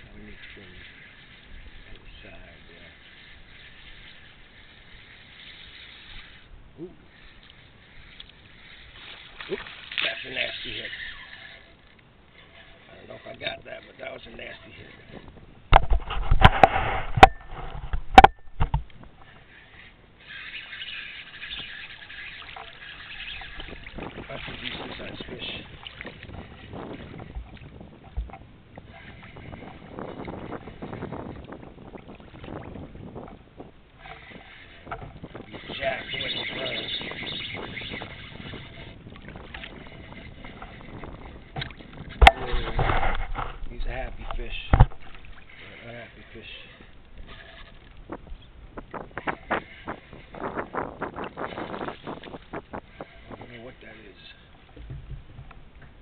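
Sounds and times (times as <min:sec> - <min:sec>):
waves slapping kayak hull: 0:00.0 - 0:56.0
knocks against hull: 0:41.5 - 0:43.6, 0:44.6 - 0:45.2, 0:54.7 - 0:56.0.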